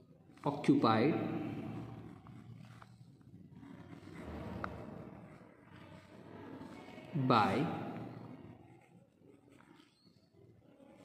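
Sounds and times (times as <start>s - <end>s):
pen scratching on paper: 0.3s - 11.0s.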